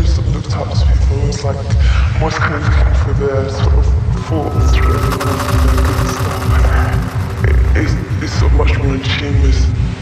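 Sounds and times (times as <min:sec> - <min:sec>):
techno music: 0:04.5 - 0:08.1.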